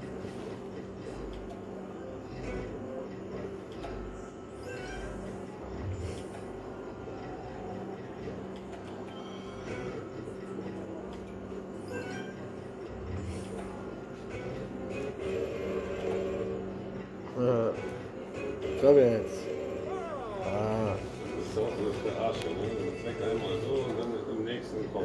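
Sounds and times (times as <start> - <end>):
slot machine sound effects and jingles: 11.8 - 12.6.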